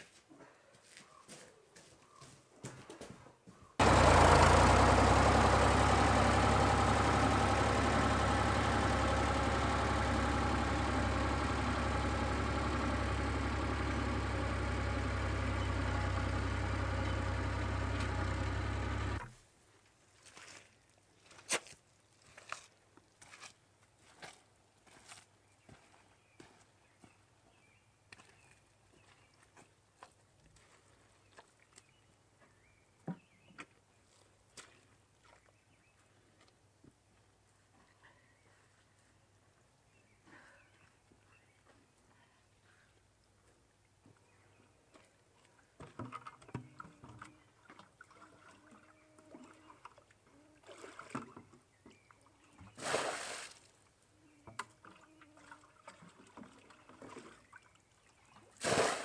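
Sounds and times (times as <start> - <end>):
vehicle engine running: 3.8 - 19.3.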